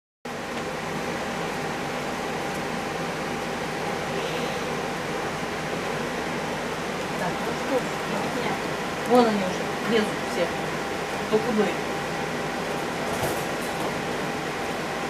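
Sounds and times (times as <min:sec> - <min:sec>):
faint hum: 0:00.3 - 0:15.0.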